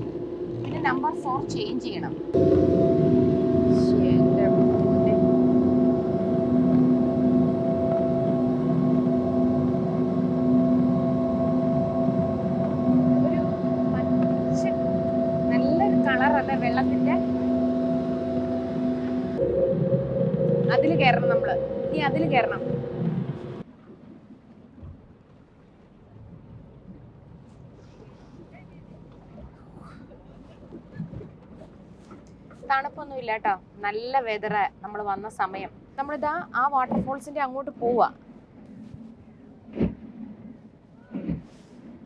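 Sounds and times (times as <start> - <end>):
passengers talking: 0.0 - 2.8, 3.5 - 6.6, 12.4 - 19.5, 20.6 - 22.9
boat motor humming: 0.0 - 23.7.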